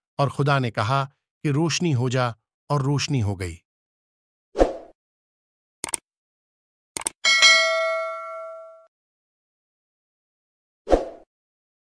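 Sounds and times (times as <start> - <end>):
bright bell ding: 7.2 - 8.9.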